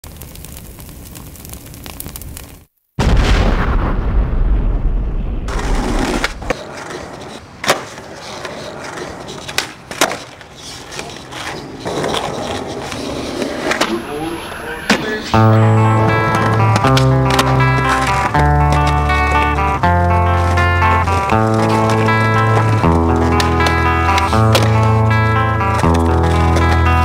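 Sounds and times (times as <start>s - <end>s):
skateboard rolling on concrete: 5.5s - 27.0s
skateboard clacking on ground: 5.6s - 14.0s, 16.1s - 27.0s.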